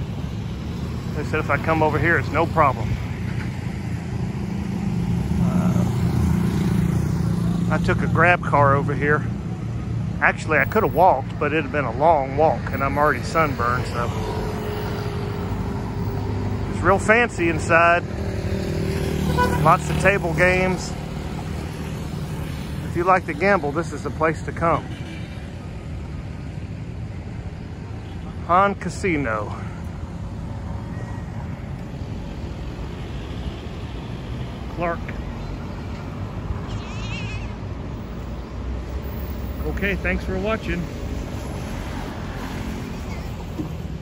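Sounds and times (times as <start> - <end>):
car driving along street: 0.0 - 44.0
road traffic rumble: 0.0 - 44.0
high wavering cry: 36.6 - 37.6.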